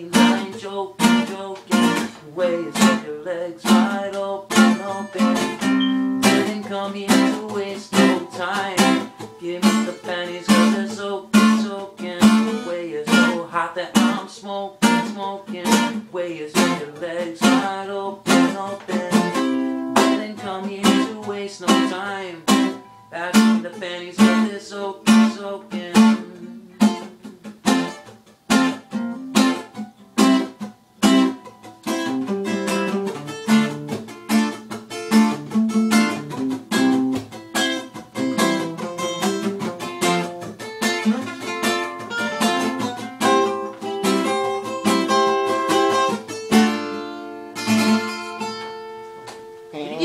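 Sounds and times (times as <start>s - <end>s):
acoustic guitar playing: 0.0s - 50.0s.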